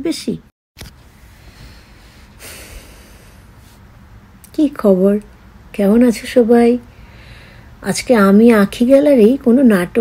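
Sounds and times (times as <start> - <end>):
breath out through nose: 1.3 - 3.8.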